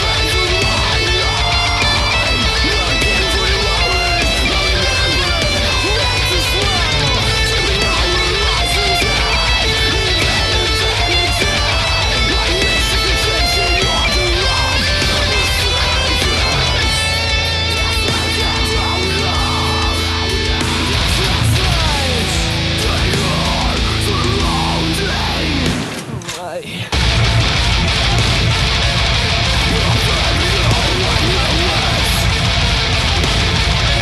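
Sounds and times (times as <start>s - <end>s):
distorted electric guitar: 0.0s - 34.0s
metal band backing track: 0.0s - 34.0s.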